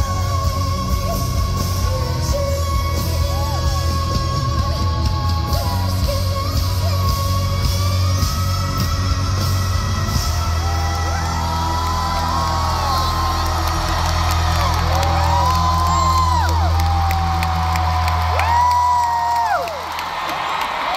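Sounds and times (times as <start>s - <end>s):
crowd cheering and whooping: 9.0s - 20.9s.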